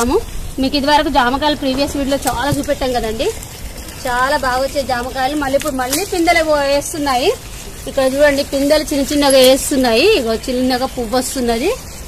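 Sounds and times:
woman speaking: 0.0 - 3.4, 4.0 - 11.9.

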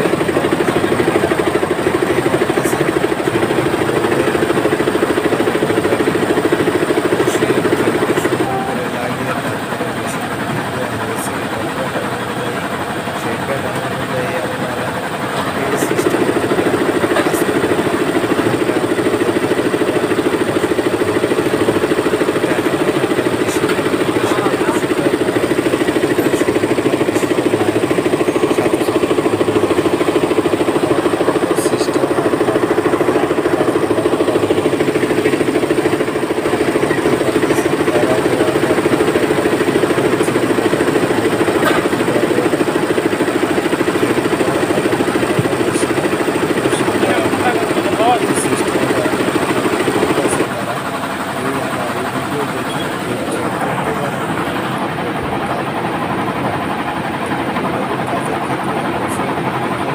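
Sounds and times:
embroidery machine rattling: 0.0 - 59.9.

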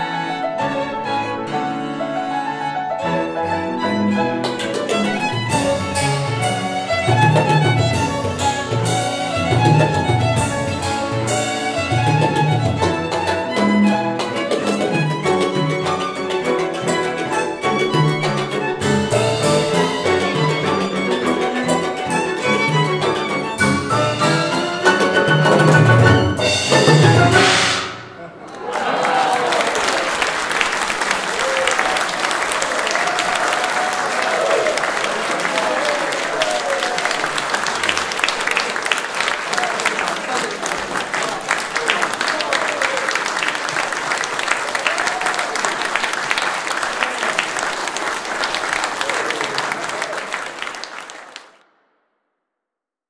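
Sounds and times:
audience applauding: 4.4 - 51.6.

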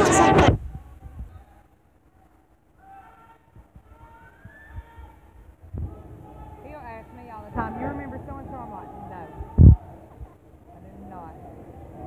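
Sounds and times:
distant shouting voices: 1.4 - 12.0
low thumps: 9.4 - 10.4.

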